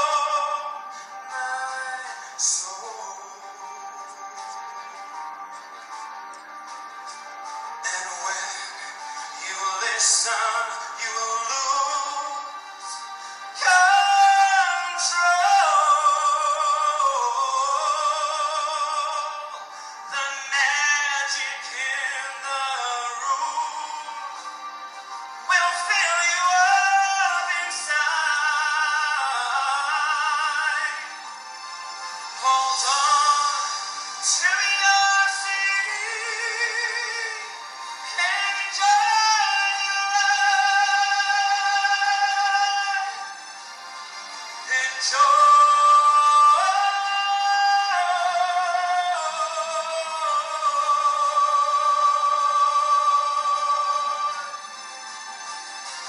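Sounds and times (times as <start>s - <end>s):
man singing long notes: 0.0s - 3.8s, 7.8s - 24.4s
backing music: 0.0s - 56.0s.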